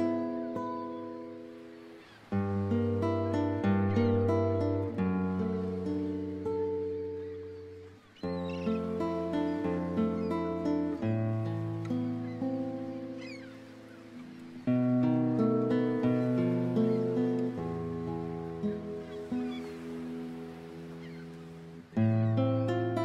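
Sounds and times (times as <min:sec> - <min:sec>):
solo guitar playing: 0:00.0 - 0:23.0.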